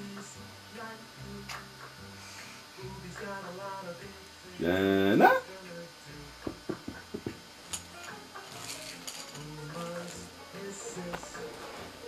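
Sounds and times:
television background music: 0.0s - 12.0s.

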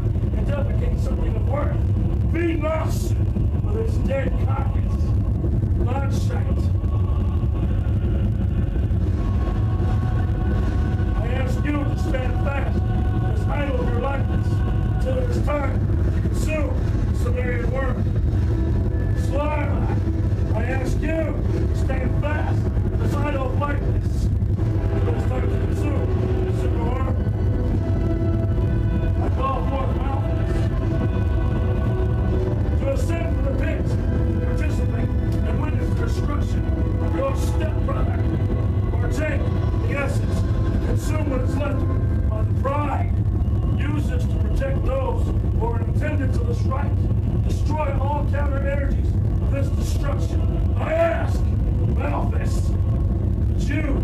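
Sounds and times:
indistinct voices talking: 0.0s - 54.0s
low rumbling drone: 0.0s - 54.0s.

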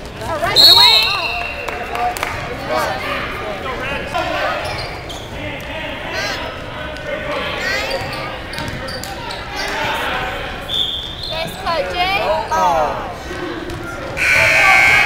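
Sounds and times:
spectators talking and calling out: 0.0s - 15.0s.

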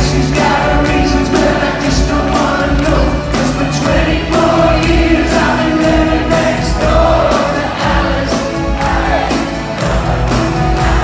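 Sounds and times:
live soft rock band: 0.0s - 11.0s
person singing: 0.0s - 11.0s.

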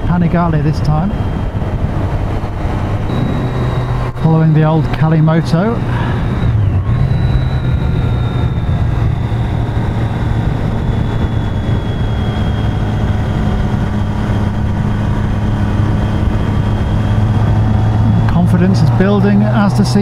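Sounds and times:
motorcycle engine running: 1.1s - 20.0s
thin high whine: 3.1s - 19.4s.

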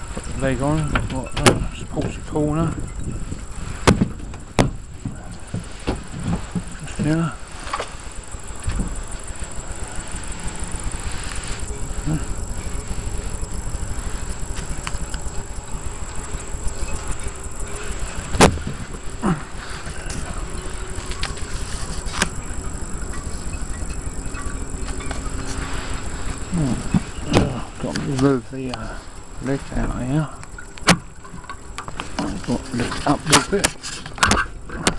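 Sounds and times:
handling knocks: 0.0s - 9.5s, 11.6s - 28.4s
wind buffeting microphone: 0.0s - 34.9s.

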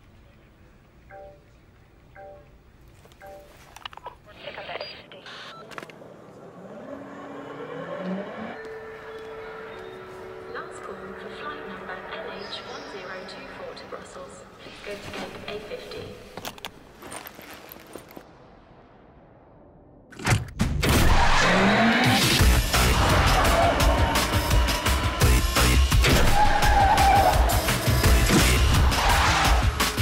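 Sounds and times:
electric cart speeding: 5.7s - 13.0s
music: 8.6s - 14.1s, 20.5s - 30.0s
tyres squealing: 26.0s - 29.6s.

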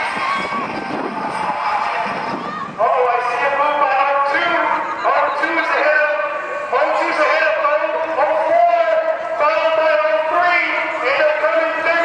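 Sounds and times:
spectators shouting: 0.0s - 8.4s
loud drawn-out yell: 0.0s - 12.0s.

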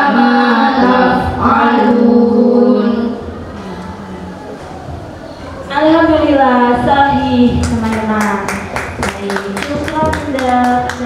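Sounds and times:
children singing in unison: 0.0s - 5.6s.

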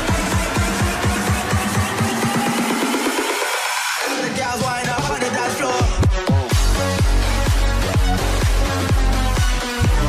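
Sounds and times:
kick-drum beat: 0.0s - 3.4s, 5.8s - 10.0s
electronic dance music: 0.0s - 10.0s.

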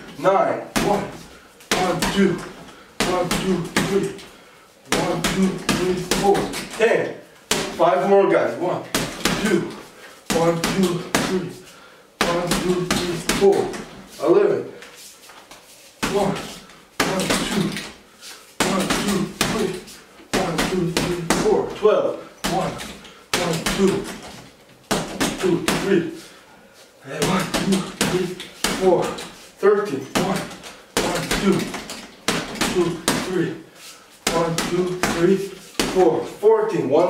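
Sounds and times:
man counting: 0.0s - 15.0s, 16.0s - 37.0s
punches thudding on punching bag: 0.7s - 4.2s, 4.9s - 6.8s, 7.5s - 7.8s, 8.9s - 11.5s, 12.2s - 14.0s, 16.0s - 18.0s, 18.6s - 21.8s, 22.4s - 24.3s, 24.9s - 26.1s, 27.2s - 29.3s, 30.1s - 33.5s, 34.2s - 36.2s.

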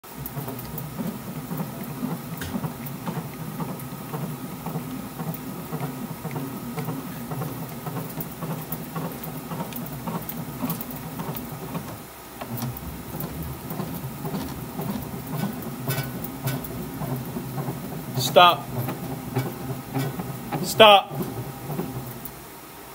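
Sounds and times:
bat rolling machine rumble: 0.0s - 22.6s.

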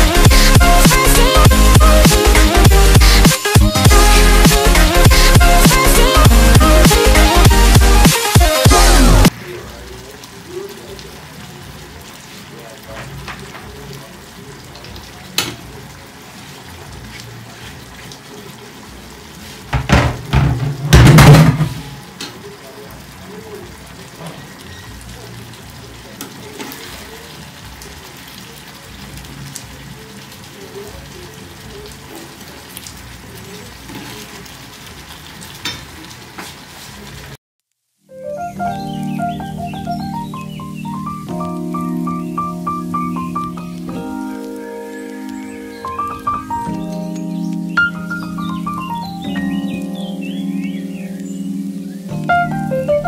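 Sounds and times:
stew bubbling and sizzling: 0.0s - 53.0s.

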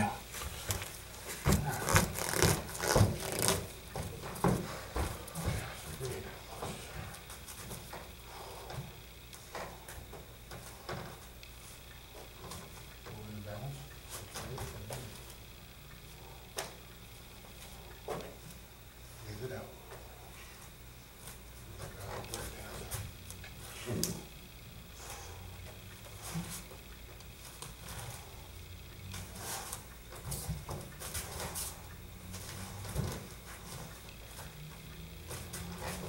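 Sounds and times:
barefoot thuds on foam mats: 0.6s - 5.8s.

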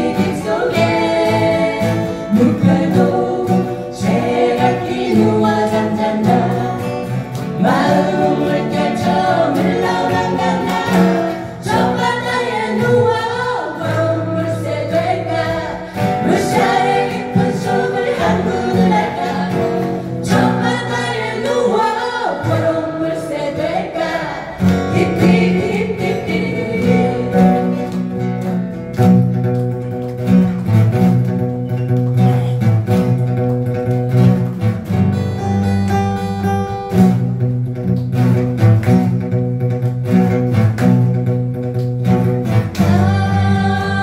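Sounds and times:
group of voices singing: 0.0s - 28.3s, 42.7s - 44.0s
strummed acoustic guitars: 0.0s - 44.0s.

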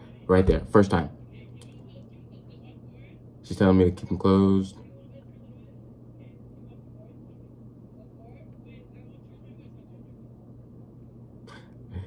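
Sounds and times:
low street hum and rumble: 0.0s - 12.0s.

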